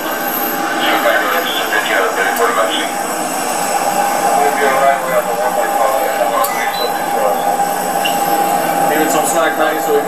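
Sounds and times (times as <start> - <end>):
jet aircraft whine: 0.0 - 10.0
men talking: 0.7 - 10.0.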